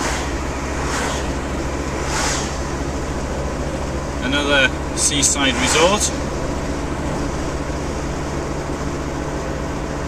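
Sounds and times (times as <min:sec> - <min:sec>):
tyre and wind roar: 0:00.0 - 0:09.0
oncoming vehicles passing: 0:00.0 - 0:10.0
van engine drone: 0:00.0 - 0:10.0.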